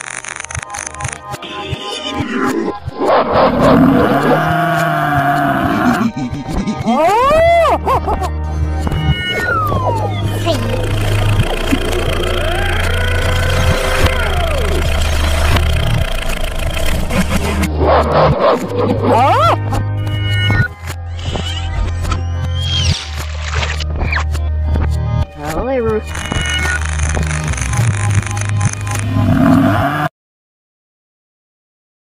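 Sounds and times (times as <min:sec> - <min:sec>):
background music with bass line: 0:00.9 - 0:29.9
cartoon pitch sweeps: 0:09.2 - 0:15.6.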